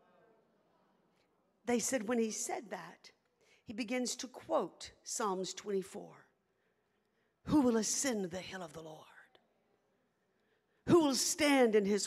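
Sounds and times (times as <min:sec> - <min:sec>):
woman speaking on a microphone: 0:01.7 - 0:03.1, 0:03.7 - 0:06.2, 0:07.5 - 0:09.2, 0:10.9 - 0:12.0.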